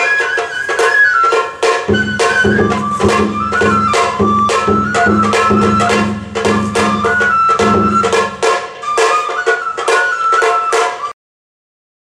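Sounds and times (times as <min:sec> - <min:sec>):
drum strokes: 0:00.0 - 0:11.1
bamboo flute melody: 0:00.0 - 0:11.2.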